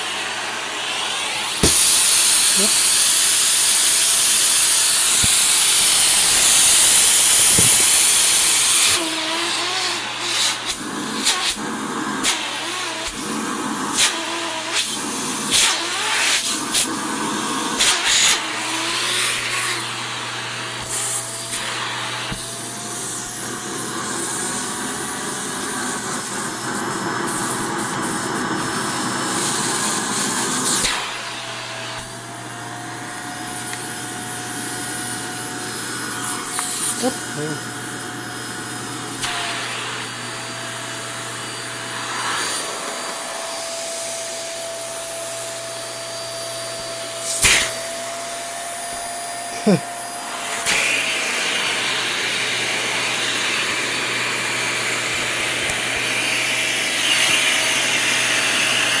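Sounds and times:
handheld vacuum suction: 0.0s - 59.0s.

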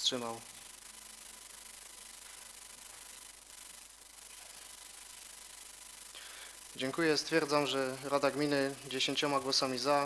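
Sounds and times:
thin steady tone: 0.0s - 10.0s.

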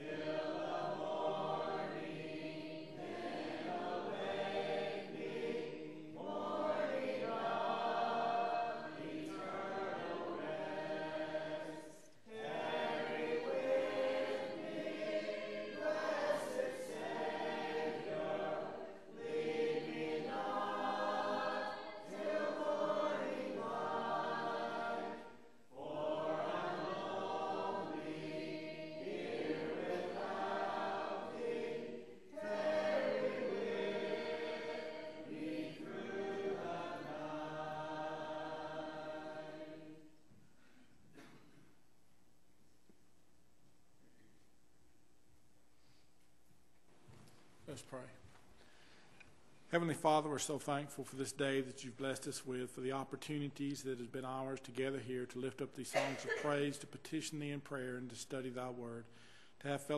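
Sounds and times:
congregation singing a hymn: 0.0s - 40.2s, 49.8s - 59.9s.

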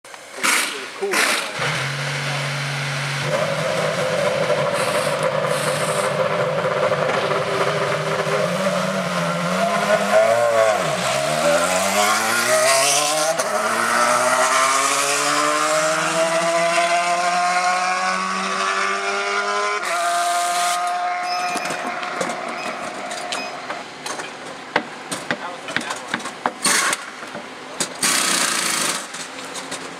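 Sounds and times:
race car engine at high revs: 0.4s - 23.7s.

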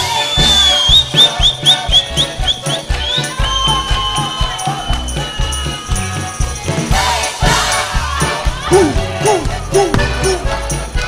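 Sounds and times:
high whistle: 0.0s - 5.9s
folk dance tune on accordion and balalaikas: 0.0s - 11.0s.

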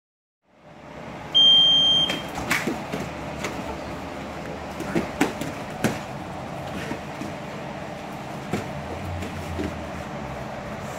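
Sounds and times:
gym room noise: 0.5s - 10.9s.

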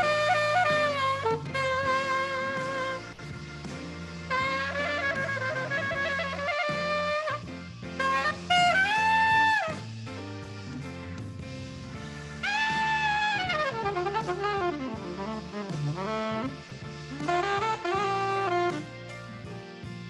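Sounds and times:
saxophone playing jazz melody: 0.0s - 10.6s, 11.9s - 20.0s
low accompaniment: 0.0s - 20.0s.

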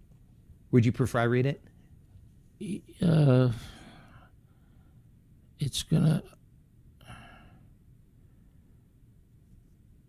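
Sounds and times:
soft exhale: 7.0s - 7.7s.

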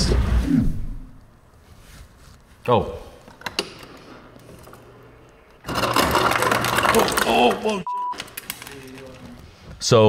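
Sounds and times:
ice dispenser motor hum: 4.4s - 7.8s
ice clattering out: 5.6s - 7.8s.

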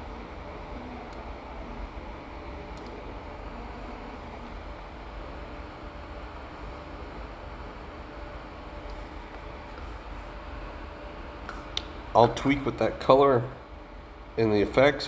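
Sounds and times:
background hum and hiss: 0.0s - 15.0s.

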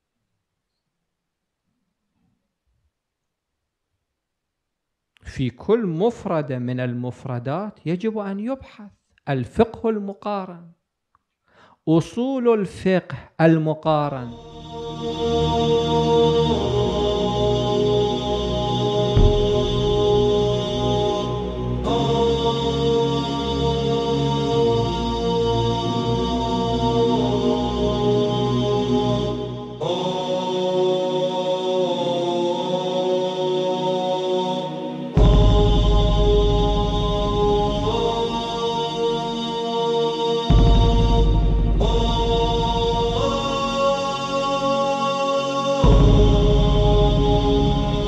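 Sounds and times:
slow chant-style music: 13.1s - 48.0s
deep bass drone: 14.3s - 30.0s, 35.2s - 39.4s, 40.5s - 44.5s, 45.8s - 48.0s.

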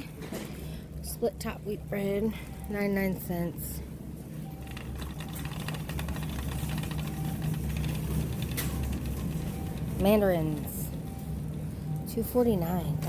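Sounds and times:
steady low hum: 0.0s - 13.0s
shopping cart rattling: 4.6s - 10.8s.

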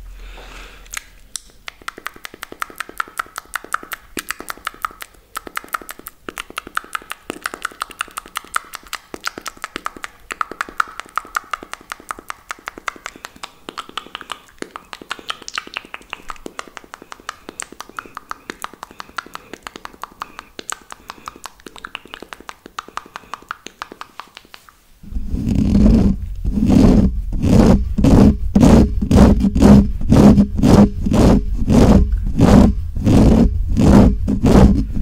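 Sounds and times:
mouth clicks and pops: 0.8s - 35.0s.

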